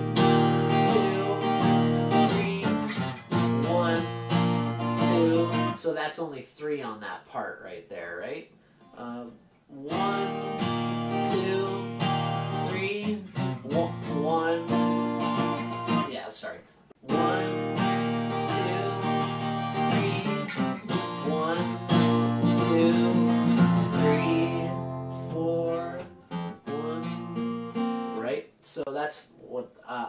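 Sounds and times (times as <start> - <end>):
acoustic guitar strumming: 0.0 - 5.8, 9.8 - 16.2, 17.0 - 28.4.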